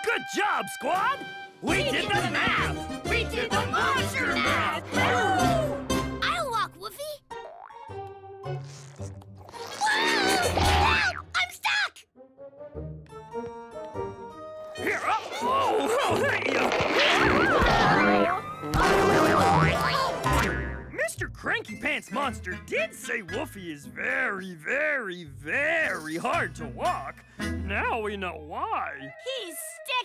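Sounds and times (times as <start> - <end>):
cartoon background music: 0.0 - 30.0
rising cartoon sound effect: 9.5 - 11.4, 15.0 - 20.4
cartoon character vocal exclamation: 9.8 - 12.0
cartoon boing sound effect: 17.2 - 20.8.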